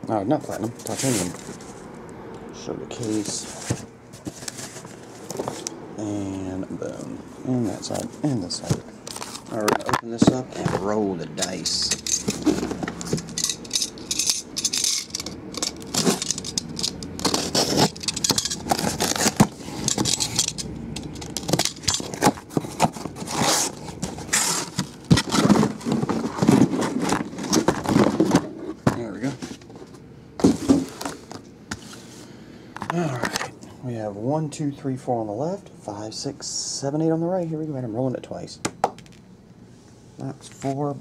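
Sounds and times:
cardboard scraping and rustling: 0.5 - 1.8, 2.9 - 5.6, 7.5 - 13.3, 15.8 - 16.3, 17.2 - 20.4, 21.4 - 32.2.

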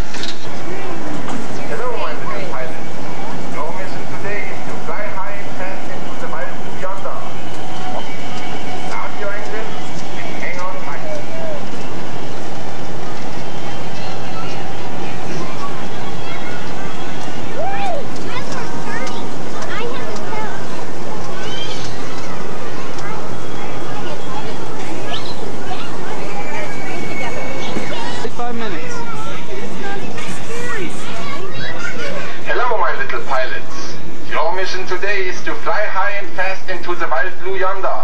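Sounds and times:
indistinct chatter: 0.0 - 38.0
loud steady background noise: 0.0 - 38.0
people calling and talking: 0.0 - 38.0
steady background noise: 0.0 - 38.0.

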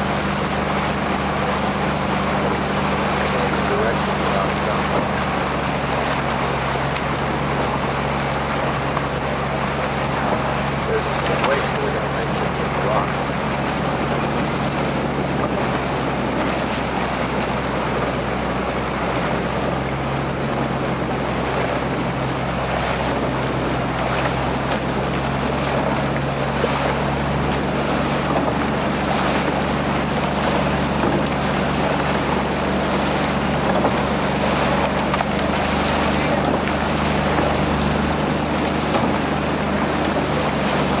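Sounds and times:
motorboat engine humming: 0.0 - 41.0
wind and water rushing: 0.0 - 41.0.

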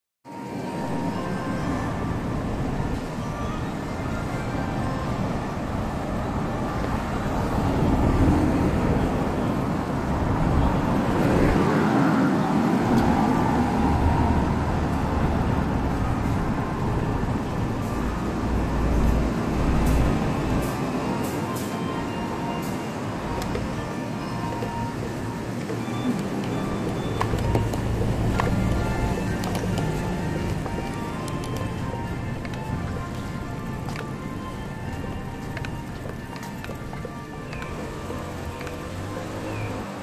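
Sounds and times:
street traffic rumble: 0.3 - 40.0
small car passing: 0.4 - 40.0.

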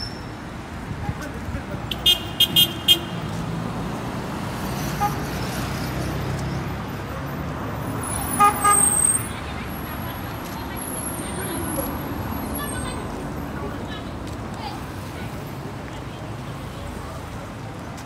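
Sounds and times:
cars passing: 0.0 - 18.0
vehicle horn short beeps: 8.4 - 9.2.

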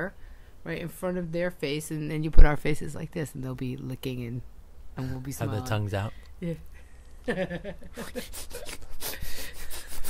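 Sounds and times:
breathy laughter: 7.3 - 10.0.

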